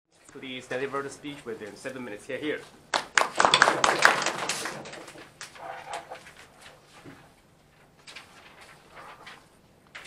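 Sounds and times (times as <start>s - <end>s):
audience clapping: 2.9s - 5.6s.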